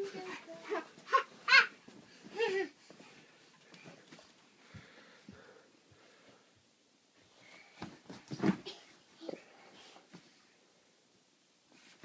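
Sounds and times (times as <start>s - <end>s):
toddler yelping: 1.1s - 1.8s
thump and rustle on mattress: 7.8s - 8.8s.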